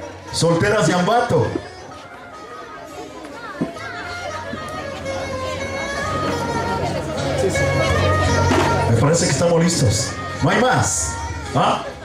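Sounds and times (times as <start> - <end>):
crowd chatter: 0.0 - 12.0
children's voices: 2.0 - 8.9.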